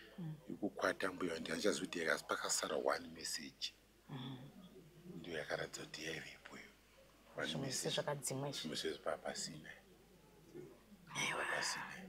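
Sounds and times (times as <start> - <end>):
person whispering: 11.1 - 12.0.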